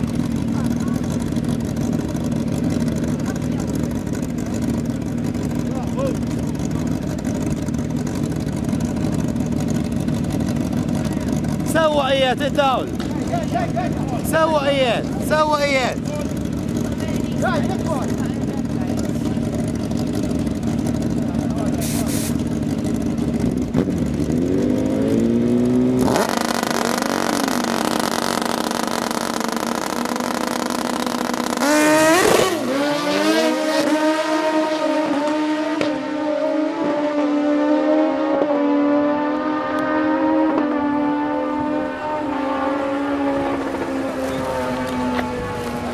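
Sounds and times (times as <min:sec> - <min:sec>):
motorcycle engines idling and blipping: 0:00.0 - 0:45.9
motorcycles accelerating through gears: 0:00.0 - 0:45.9.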